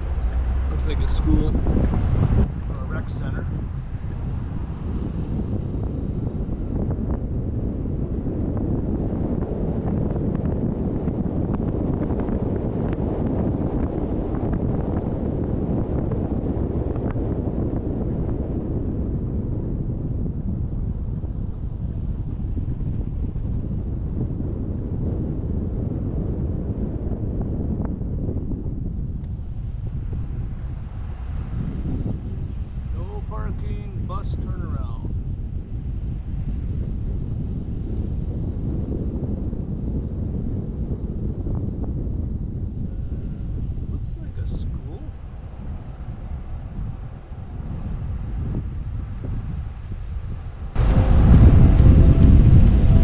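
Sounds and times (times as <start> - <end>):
vehicle road noise: 0.0 - 19.4, 28.9 - 39.6, 42.3 - 53.0
wind buffeting microphone: 0.0 - 53.0.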